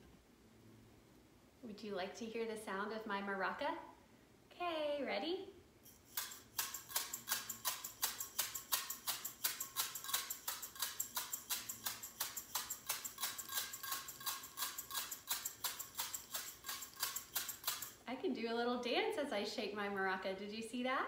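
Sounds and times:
rice rattling in glass jar: 5.8s - 18.0s.

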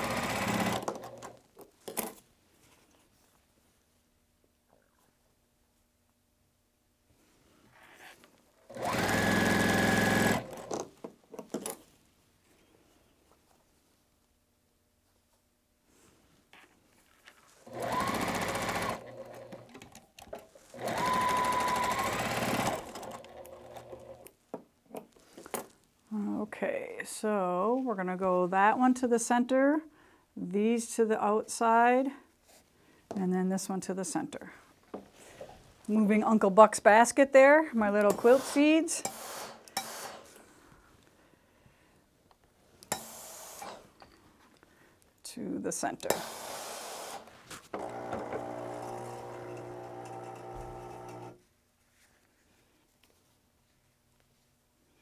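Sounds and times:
sewing machine motor whine: 8.7s - 10.7s, 17.7s - 19.7s, 20.8s - 24.2s, 47.8s - 51.4s
fabric rubbing and handling: 51.4s - 54.6s.

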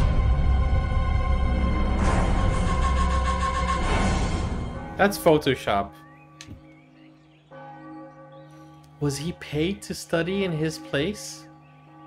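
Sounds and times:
soft bell-like film music: 4.6s - 12.0s.

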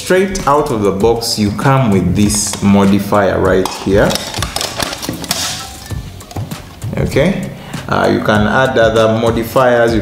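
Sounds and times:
soft background music: 0.0s - 10.0s
metal reflector clicks and clinks: 3.6s - 6.7s
metal scrape: 3.7s - 6.8s.

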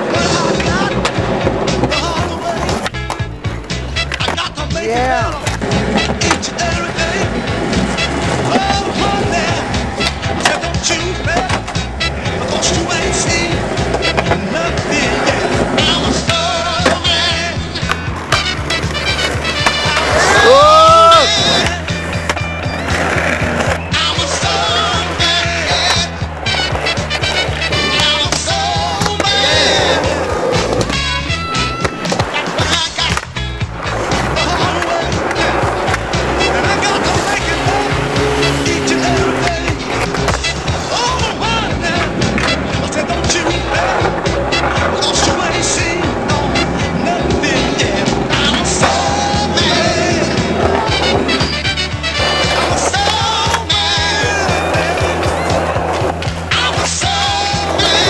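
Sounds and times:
music soundtrack: 0.0s - 58.0s
skateboard wheels rolling: 0.0s - 58.0s
loud rising swoop: 37.1s - 40.6s.

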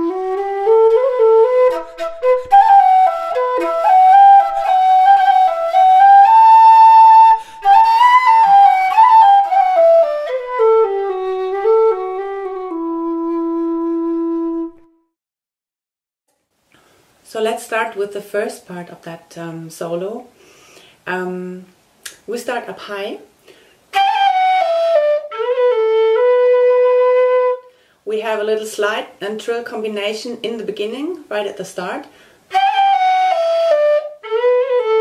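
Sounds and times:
low whistle folk melody: 0.0s - 15.1s, 23.9s - 27.8s, 32.5s - 35.0s.

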